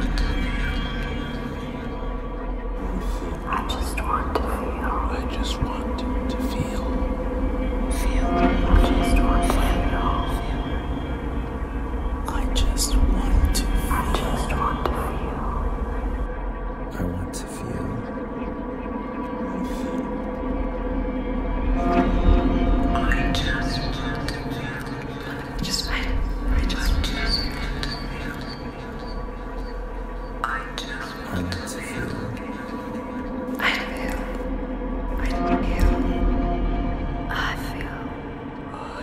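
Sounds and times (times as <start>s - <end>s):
people whispering: 0.0s - 2.1s, 2.7s - 7.2s, 7.8s - 10.8s, 12.2s - 15.9s, 16.9s - 18.2s, 19.3s - 20.2s, 22.9s - 34.5s, 35.1s - 36.3s, 37.2s - 39.0s
steady deep drone: 0.0s - 39.0s.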